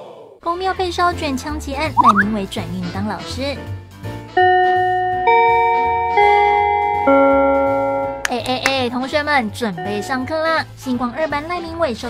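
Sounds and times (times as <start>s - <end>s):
school bell chime: 4.4s - 8.5s, 9.8s - 10.6s.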